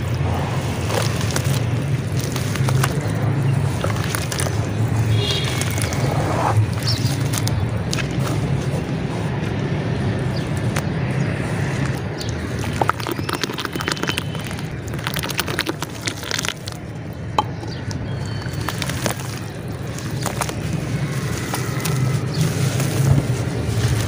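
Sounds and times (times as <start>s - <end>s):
dirt block crackling: 0.0s - 9.4s, 11.6s - 24.0s
mud squeezed and sloshed by hand: 0.0s - 24.0s.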